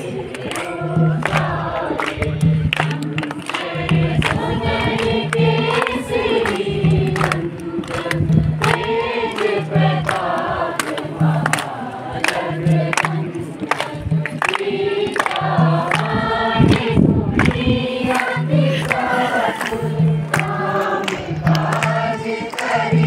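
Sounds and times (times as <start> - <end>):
group singing: 0.0 - 23.0
low beat: 0.0 - 23.0.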